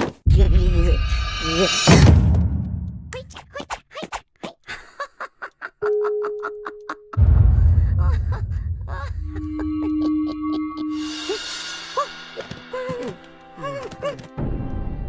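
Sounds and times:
loud low rumble: 0:00.3 - 0:03.1, 0:07.2 - 0:10.2
steady tone: 0:00.3 - 0:03.1.

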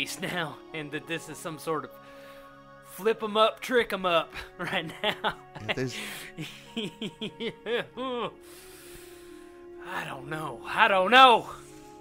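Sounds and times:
soft background music: 0:00.0 - 0:12.0
people laughing: 0:04.4 - 0:08.3.

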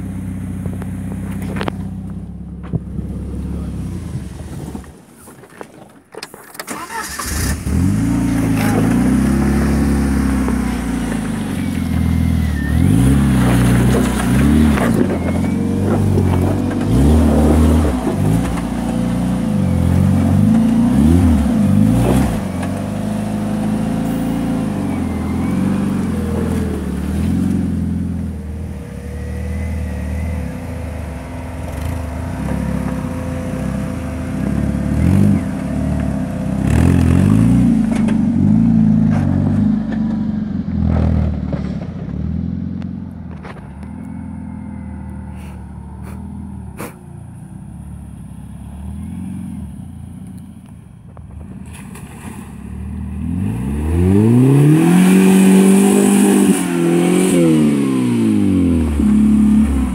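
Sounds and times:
engine revving: 0:06.7 - 0:47.0, 0:52.7 - 0:59.9.

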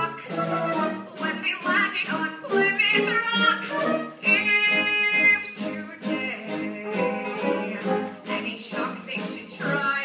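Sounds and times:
orchestral accompaniment: 0:00.0 - 0:10.0.

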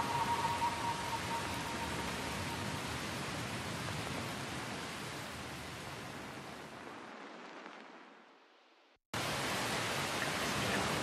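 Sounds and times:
music note: 0:00.0 - 0:02.9.

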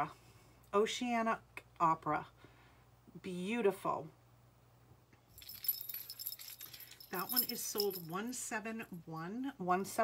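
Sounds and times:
chain necklace jingling: 0:05.3 - 0:08.4.

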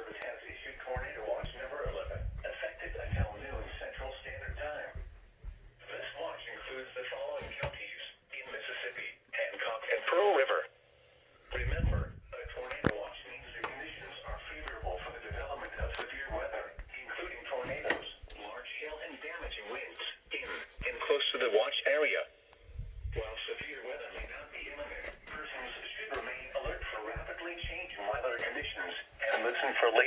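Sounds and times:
radio broadcast voice: 0:00.0 - 0:05.1, 0:05.8 - 0:22.4, 0:23.0 - 0:30.0.

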